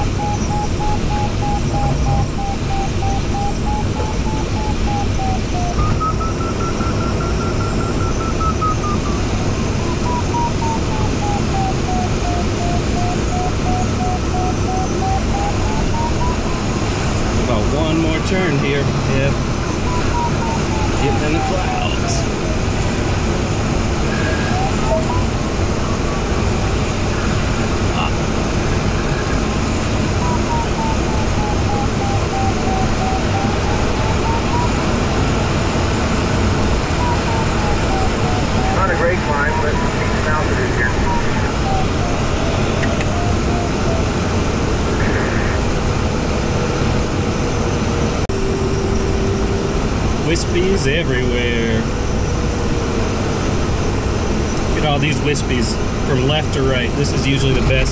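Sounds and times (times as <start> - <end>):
variometer beeping: 0.0 - 25.8, 29.3 - 45.1
steady low tone: 0.0 - 47.7.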